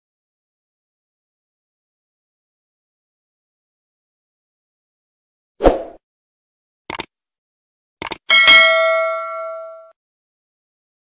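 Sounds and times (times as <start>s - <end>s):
mouse clicks: 8.0s - 8.2s
bell ding: 8.3s - 10.0s.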